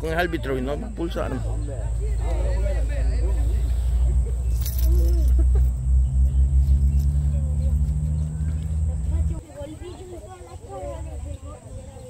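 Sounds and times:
motor engine running: 0.5 - 9.7.

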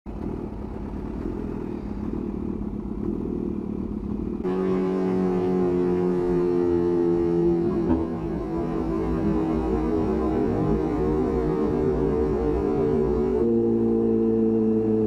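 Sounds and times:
motorcycle engine rumbling: 0.1 - 15.0.

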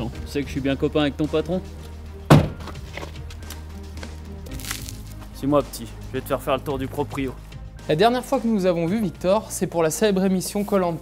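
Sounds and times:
background music: 0.0 - 11.0
car door shutting: 2.3 - 3.1.

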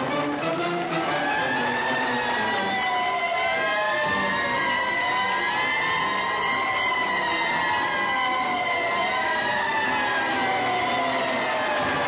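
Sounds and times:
police motorcycle sirens wailing: 0.0 - 12.0.

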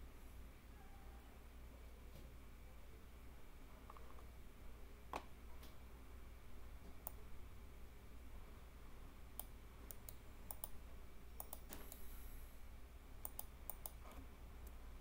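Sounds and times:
faint low hum: 0.0 - 15.0
mouse and keyboard clicks: 9.4 - 10.8, 11.4 - 12.0, 13.2 - 14.2.

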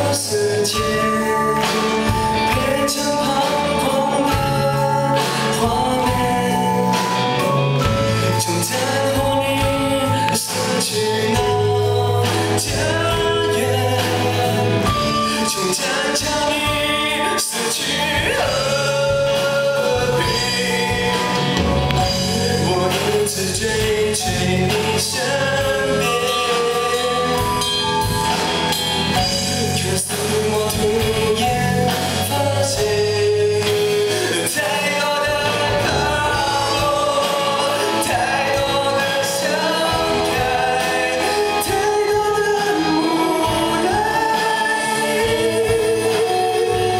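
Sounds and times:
bass guitar: 0.0 - 46.9
drum kit: 0.0 - 46.9
electric guitars: 0.0 - 46.9
man singing lead vocals: 0.0 - 46.9.

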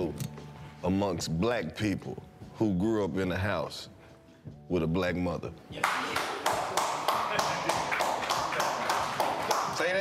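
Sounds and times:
hand slaps or claps: 5.8 - 10.0.

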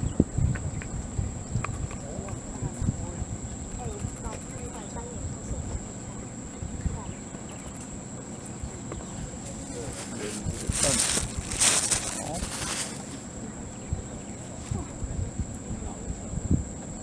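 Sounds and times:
thin high-pitched whine: 0.0 - 17.0
wind on microphone: 0.0 - 17.0
faint distant voices: 1.7 - 17.0.

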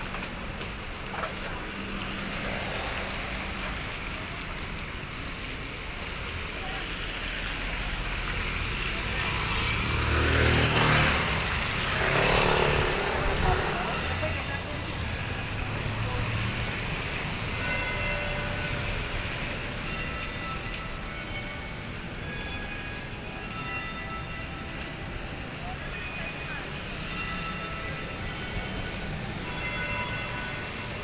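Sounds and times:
steady traffic background: 0.0 - 31.0
vehicles passing on wet road: 0.0 - 31.0.

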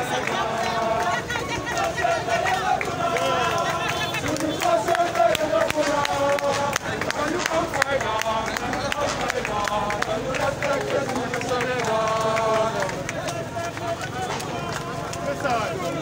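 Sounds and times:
crowd shouting and chanting: 0.0 - 16.0.

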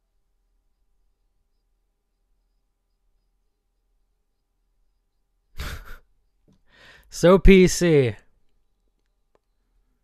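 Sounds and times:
faint breath in: 6.6 - 7.1
man sighing: 6.6 - 7.1.

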